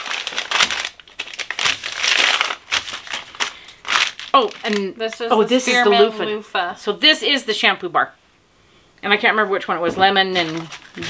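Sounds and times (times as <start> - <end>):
paper bag crinkling: 0.0 - 5.7, 10.3 - 11.0.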